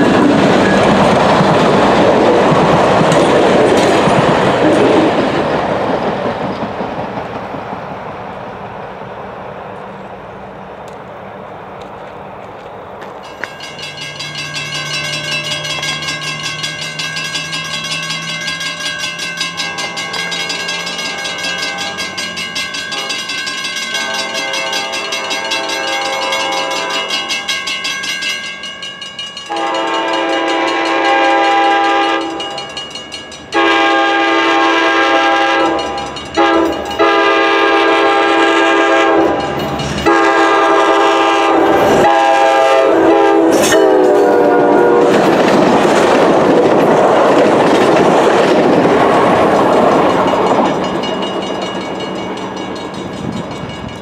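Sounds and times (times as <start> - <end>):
train wheels rumbling on rails: 0.0 - 54.0
locomotive air horn blasts: 24.0 - 27.1, 29.5 - 32.4, 33.6 - 39.4, 40.0 - 45.2.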